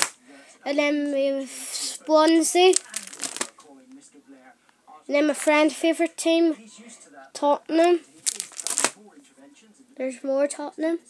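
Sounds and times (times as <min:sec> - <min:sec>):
plastic binder pages crinkling: 0:02.6 - 0:03.6, 0:08.1 - 0:09.0.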